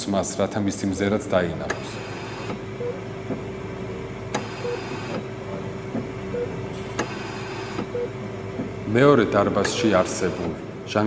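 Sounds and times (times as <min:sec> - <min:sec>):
oxygen concentrator humming: 0:00.0 - 0:11.0.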